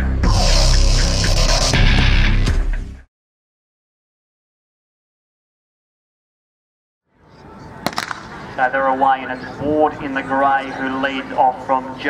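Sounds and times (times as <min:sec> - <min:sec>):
open-air background noise: 0:07.1 - 0:12.0
starter's pistol firing: 0:07.8 - 0:08.5.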